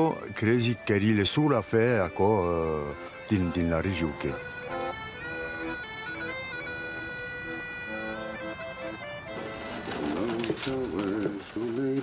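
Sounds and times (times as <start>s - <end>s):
bagpipe music: 0.0s - 12.0s
pigeon cooing: 1.8s - 12.0s
willow rods crackling and rustling: 9.4s - 12.0s.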